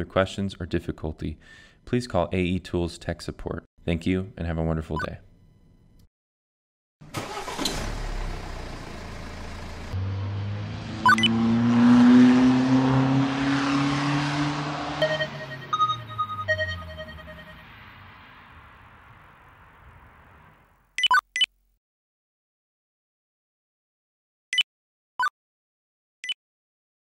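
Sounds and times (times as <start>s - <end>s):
car engine revving past: 7.5s - 20.7s
short beeps: 11.0s - 11.4s, 15.0s - 17.8s.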